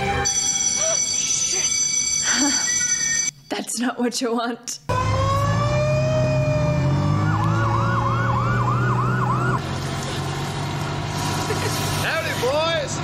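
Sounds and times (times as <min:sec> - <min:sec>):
wailing siren: 0:00.0 - 0:01.7, 0:04.9 - 0:09.6
yelping siren: 0:00.0 - 0:03.3, 0:04.9 - 0:09.6
low engine rumble: 0:04.9 - 0:13.0.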